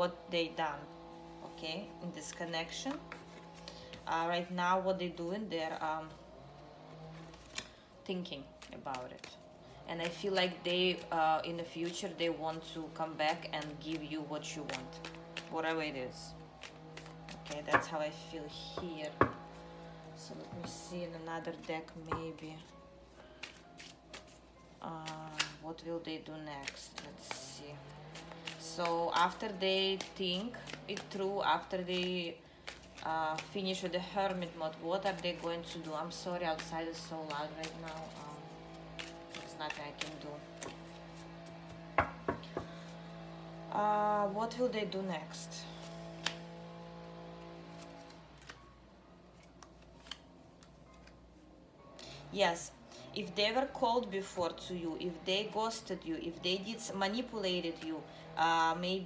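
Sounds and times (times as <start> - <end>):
soft background music: 0.0 - 59.0
cards clicking: 7.0 - 7.8, 10.0 - 15.6, 16.3 - 17.9, 21.6 - 25.6, 26.4 - 43.0, 46.1 - 46.6, 47.6 - 48.7, 49.3 - 51.2.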